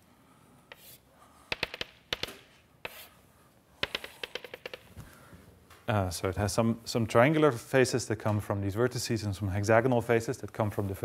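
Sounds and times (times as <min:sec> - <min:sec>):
chalk tapping on a blackboard: 0:00.7 - 0:03.1, 0:03.8 - 0:04.9.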